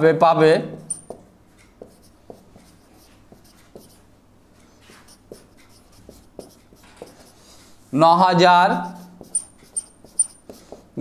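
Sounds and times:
marker pen scratching on whiteboard: 0.7 - 7.6, 8.7 - 11.0.

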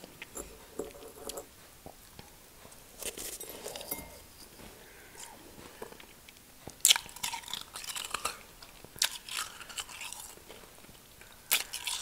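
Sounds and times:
crunchy chewing: 5.0 - 12.0.

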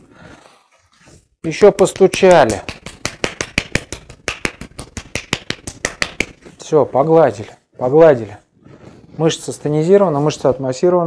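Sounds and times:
hand slapping upper arm: 1.5 - 6.6.

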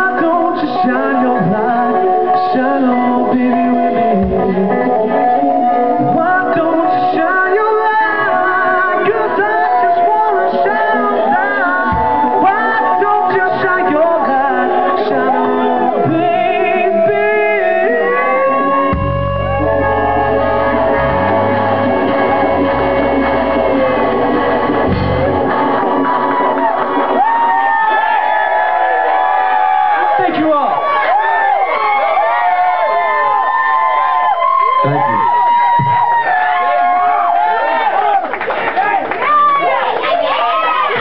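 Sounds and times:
electric guitar: 0.0 - 30.2
live rock band playing: 0.0 - 30.2
bass guitar: 0.0 - 37.5
drums: 0.0 - 38.3, 39.2 - 41.0.

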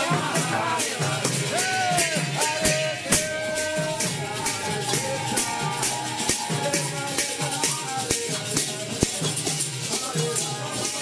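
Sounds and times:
hand cymbals clashing: 0.0 - 11.0
hand drum: 0.0 - 11.0
voices chanting: 0.0 - 11.0.

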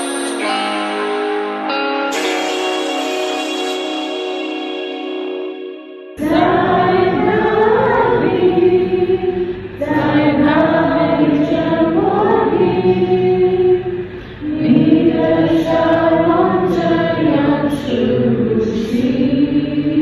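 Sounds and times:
group of voices singing: 6.2 - 20.0.

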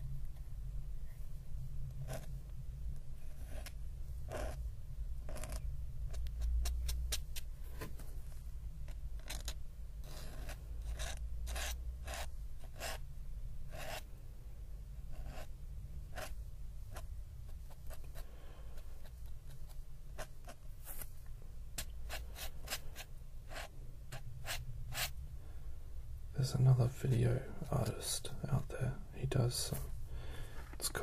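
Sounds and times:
pen nib scratching on paper: 2.0 - 2.4, 3.2 - 4.6, 5.2 - 7.5, 8.8 - 13.0, 13.7 - 14.1, 15.1 - 15.5, 16.1 - 18.2, 18.8 - 21.1, 21.8 - 25.1.

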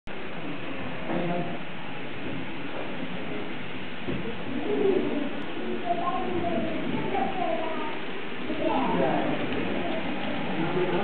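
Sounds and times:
steady background hiss: 0.1 - 11.0.

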